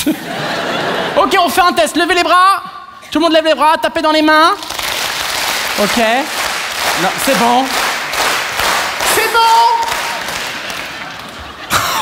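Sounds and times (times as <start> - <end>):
audience clapping: 4.5 - 12.0.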